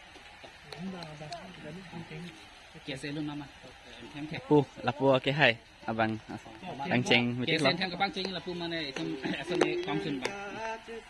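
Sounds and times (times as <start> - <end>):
background talk: 0.6 - 10.7.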